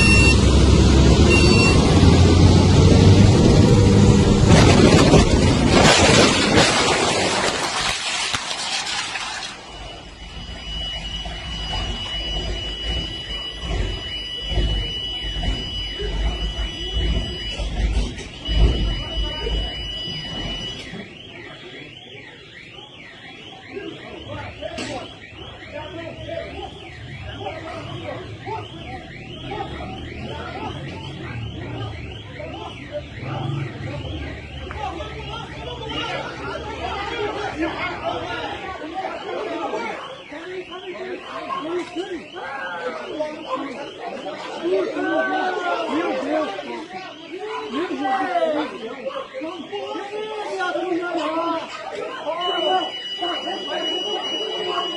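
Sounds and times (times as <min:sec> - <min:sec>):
high electronic warning tone: 0:00.0 - 0:02.1, 0:09.5 - 0:50.1, 0:52.0 - 0:54.9
voices: 0:00.0 - 0:54.9
warbling alarm: 0:00.0 - 0:54.9.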